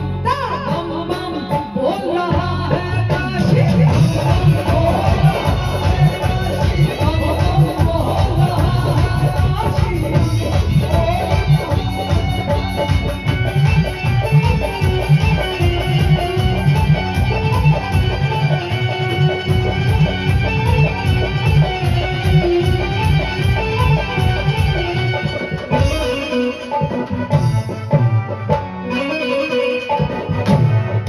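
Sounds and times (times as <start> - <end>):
banjo melody: 0.0 - 31.0
keyboard: 0.0 - 31.0
hand drum beat: 2.2 - 28.6.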